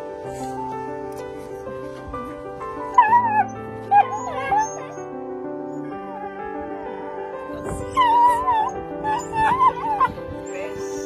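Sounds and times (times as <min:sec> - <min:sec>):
soft background music: 0:00.0 - 0:11.0
dog crying out: 0:02.9 - 0:05.1, 0:07.6 - 0:11.0.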